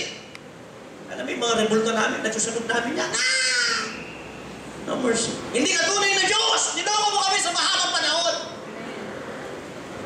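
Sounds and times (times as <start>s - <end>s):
man shouting through microphone: 3.0s - 3.9s, 5.6s - 8.6s
man speaking: 4.8s - 8.6s.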